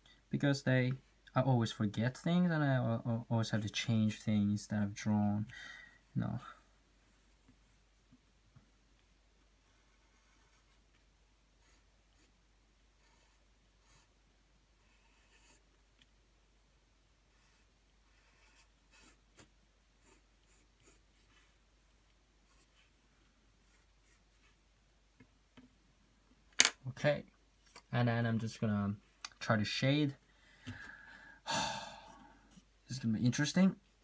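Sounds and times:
pencil scratching on paper: 9.6s - 10.8s, 11.6s - 12.3s, 13.0s - 14.1s, 14.8s - 15.7s, 17.3s - 21.6s, 22.4s - 22.9s, 23.6s - 24.6s.

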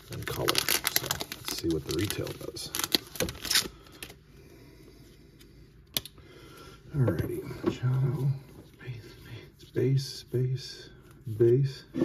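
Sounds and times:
wrapper crinkling: 0.0s - 4.2s.

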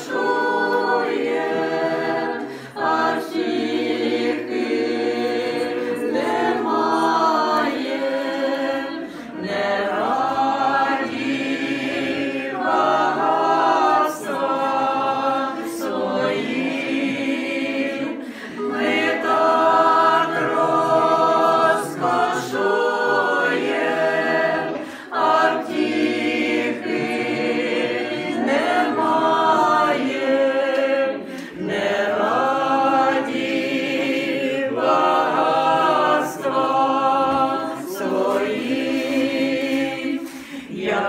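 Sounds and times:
women's voices singing a hymn: 0.0s - 41.0s.

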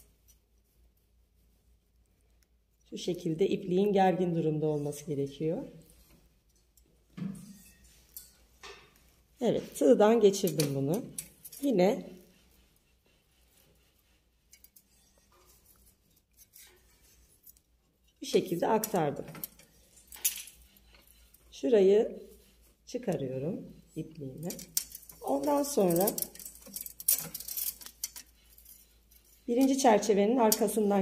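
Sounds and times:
metal wire heddles clinking: 0.0s - 31.0s.

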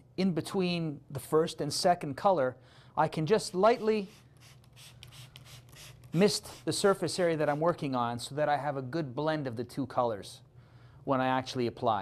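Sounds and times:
spray bottle squirts: 3.8s - 6.8s.

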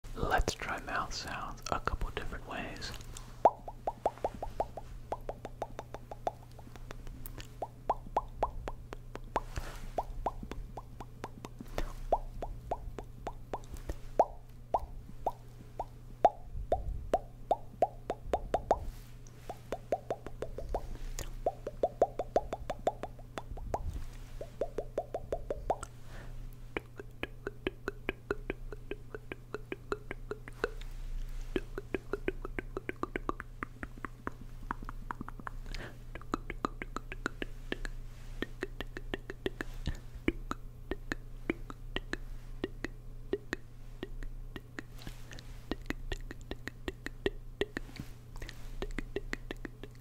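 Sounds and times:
steady low hum: 0.1s - 50.0s
wet tongue and lip clicks: 1.6s - 50.0s.

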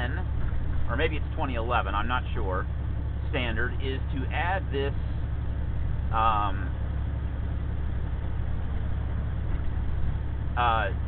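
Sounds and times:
truck engine and road drone: 0.0s - 11.0s.

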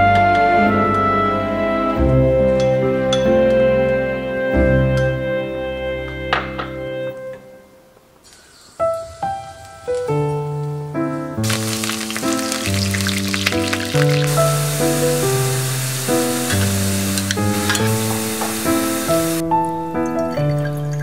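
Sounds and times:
piano music: 8.9s - 21.0s
garlic sizzling in hot oil: 11.4s - 19.4s.

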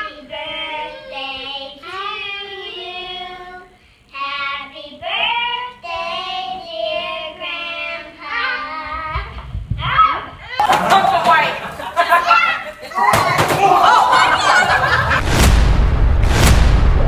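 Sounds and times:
young children singing: 0.0s - 9.4s.

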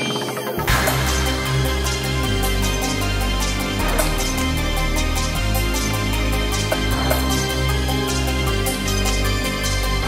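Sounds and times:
electronic music with heavy bass: 0.0s - 10.0s.

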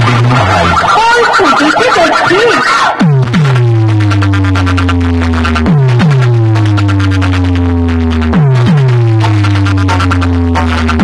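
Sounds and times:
loud electronic dance music: 0.0s - 11.0s.

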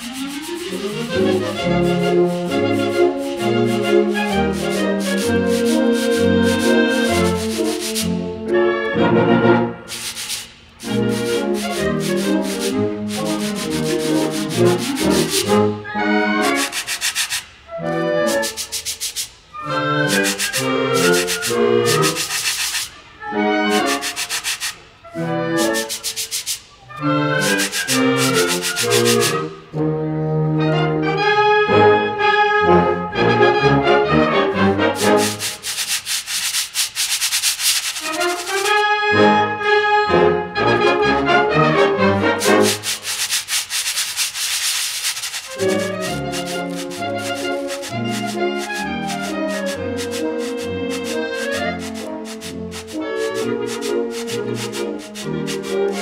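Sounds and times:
sandpaper blocks rubbed together: 0.0s - 8.2s, 9.9s - 29.6s, 34.9s - 38.8s, 42.2s - 56.0s.

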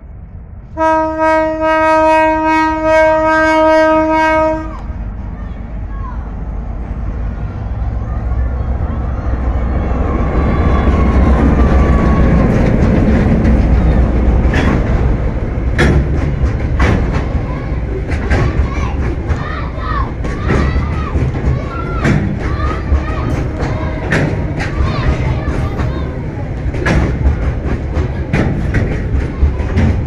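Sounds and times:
locomotive engine rumble: 0.0s - 30.0s
locomotive horn: 0.8s - 4.9s
train wheels clacking on rail joints: 10.4s - 30.0s.

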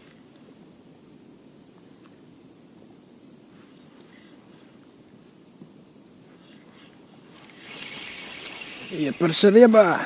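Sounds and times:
fishing reel gears whirring: 7.3s - 10.0s.

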